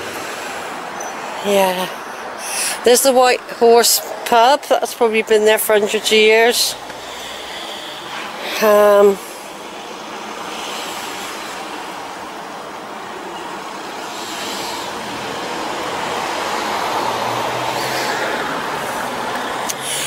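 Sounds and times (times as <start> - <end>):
vehicle passing on road: 0.0 - 20.0.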